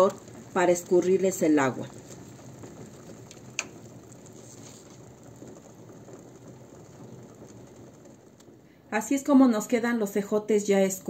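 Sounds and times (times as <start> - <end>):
water bubbling in a pot: 0.0 - 9.8.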